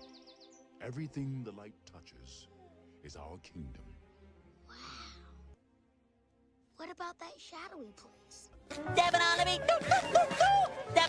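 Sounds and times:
baby cooing: 2.5 - 2.9.

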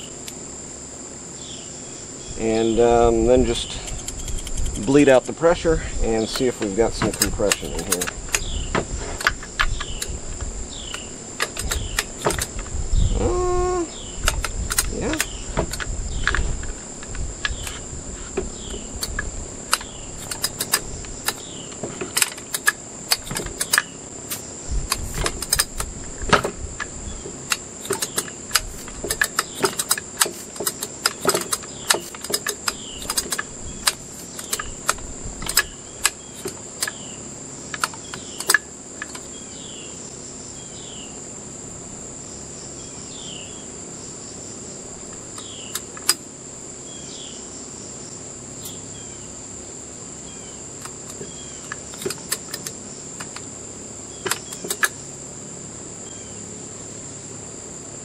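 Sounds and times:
crickets trilling: 0.0 - 58.0
clicks and knocks on metal workbench: 27.5 - 35.7.

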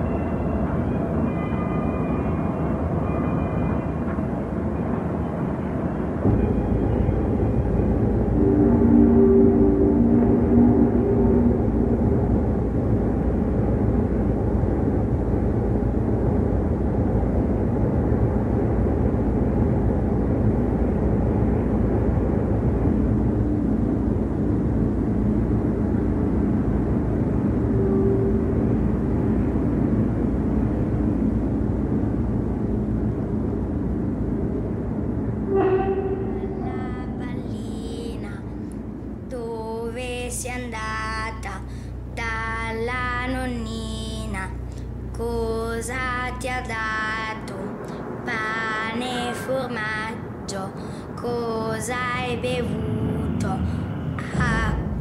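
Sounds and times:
steady low rumble: 0.0 - 55.0
faint held tones: 35.5 - 37.6.

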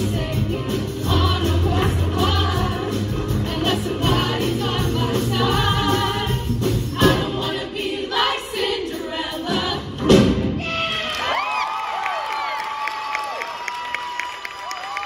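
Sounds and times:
choir singing with band: 0.0 - 10.7
audience cheering: 10.6 - 15.0
people clapping: 10.9 - 15.0.

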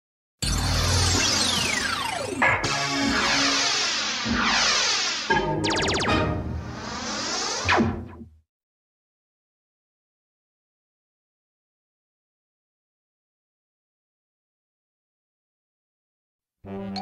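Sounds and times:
synthesizer logo jingle: 0.5 - 8.2, 16.7 - 17.0.

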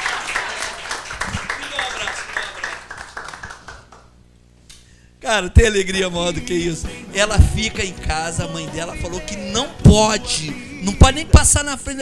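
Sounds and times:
audience clapping: 0.0 - 4.2.

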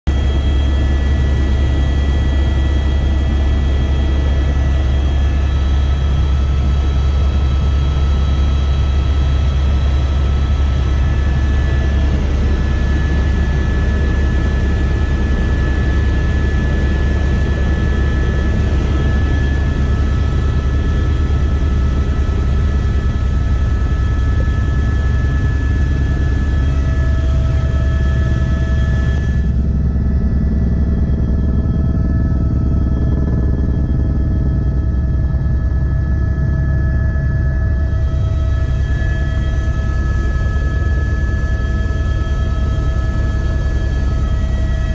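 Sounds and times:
helicopter rotor drone: 0.1 - 44.9
turbine whine: 0.1 - 44.9.

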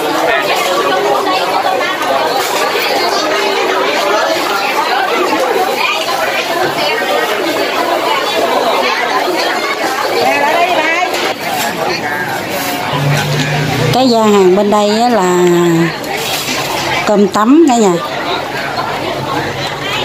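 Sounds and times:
crowd chatter: 0.0 - 20.0.

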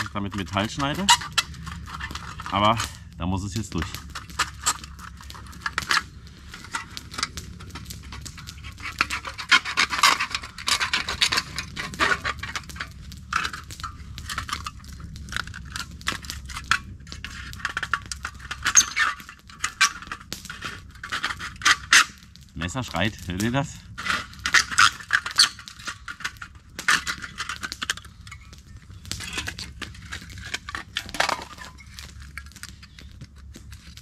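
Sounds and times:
knife scraping tin can: 8.7 - 12.6.

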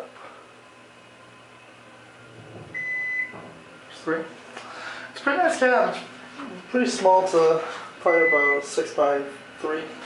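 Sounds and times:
faint low elevator hum: 0.0 - 10.0
elevator high beep: 2.6 - 3.5, 8.1 - 8.7.

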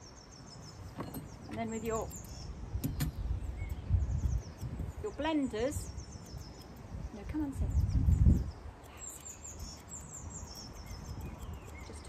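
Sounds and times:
birds chirping faintly: 0.0 - 12.0
wind rumble on microphone: 0.8 - 12.0.

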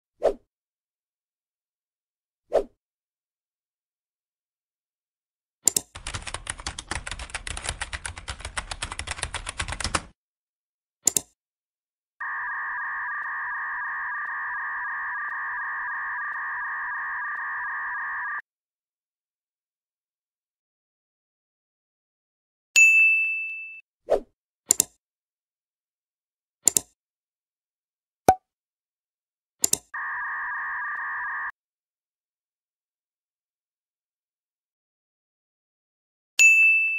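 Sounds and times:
sharp clicks: 5.6 - 6.8, 11.0 - 11.4, 26.6 - 26.9
fast keyboard typing: 5.7 - 10.2
steady electronic tone: 12.2 - 18.4.

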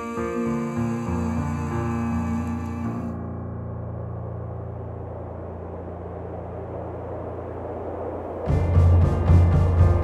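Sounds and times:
low rumbling drone: 0.0 - 10.0
rushing noise: 0.0 - 10.0.

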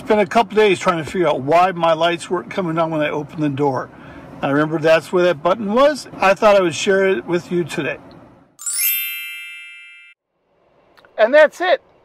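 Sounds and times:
high ringing chime: 8.6 - 10.2.

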